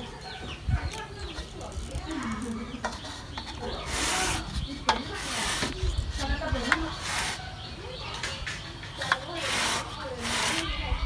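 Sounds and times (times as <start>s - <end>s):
chickens clucking: 0.0s - 11.0s
branches rustling: 1.0s - 7.5s.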